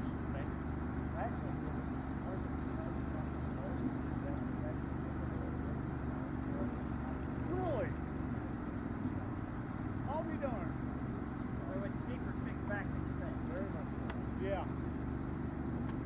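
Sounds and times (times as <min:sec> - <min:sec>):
faint people talking: 0:00.0 - 0:14.8
steady low hum: 0:00.0 - 0:16.0.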